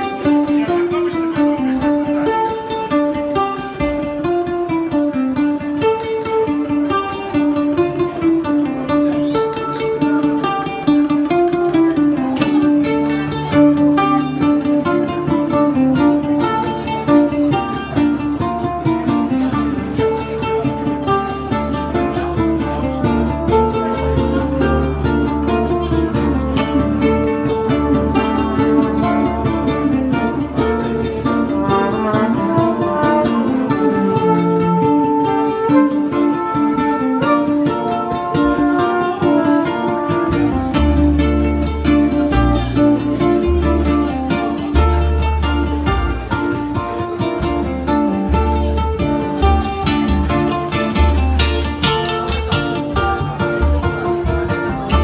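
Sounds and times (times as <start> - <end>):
amplified ukulele picking: 0.0 - 55.0
double bass low notes: 0.0 - 55.0.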